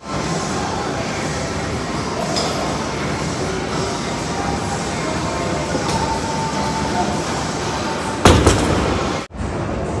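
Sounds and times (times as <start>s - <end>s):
rumbling gym room noise: 0.0s - 10.0s.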